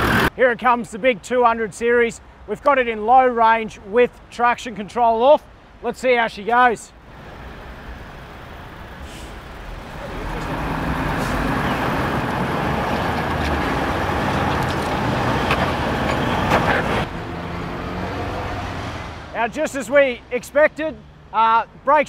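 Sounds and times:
engine working hard: 0.0s - 0.3s, 7.7s - 19.0s.

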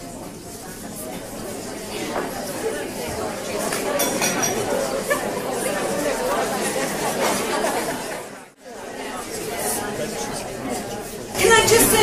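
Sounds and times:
babble of many people talking: 0.0s - 12.0s.

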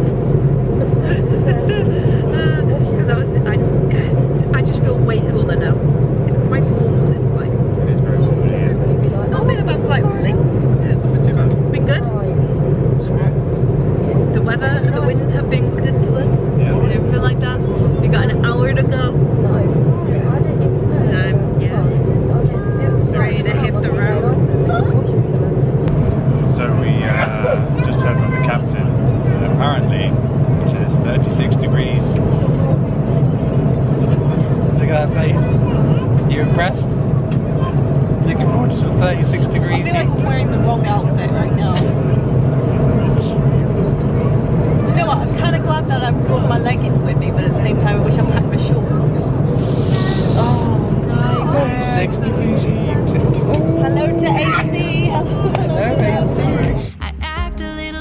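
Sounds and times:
jet airliner cabin drone: 0.0s - 58.0s.

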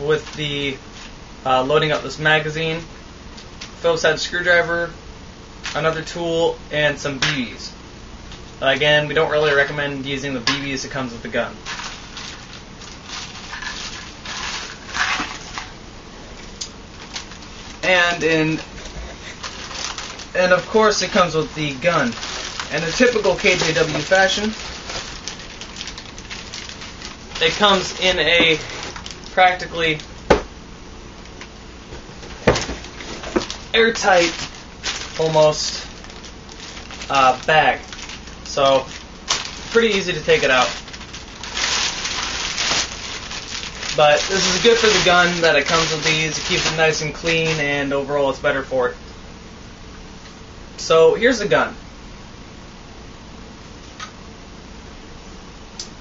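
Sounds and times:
plastic bag crinkling: 11.6s - 15.8s, 16.9s - 30.3s, 31.2s - 47.9s.

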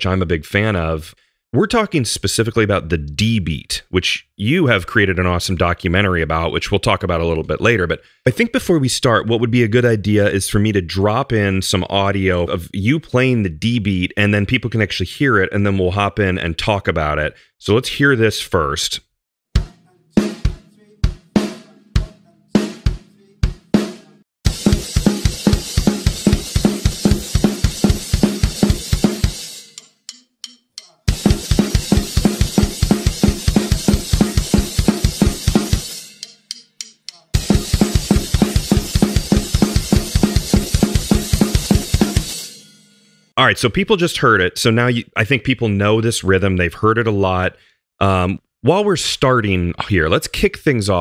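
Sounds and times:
fast punk drum beat: 19.6s - 29.8s, 30.8s - 42.8s.

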